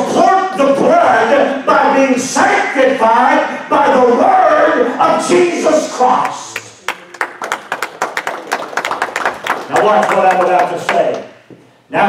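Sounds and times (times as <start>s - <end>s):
scattered hand claps: 6.6s - 11.3s.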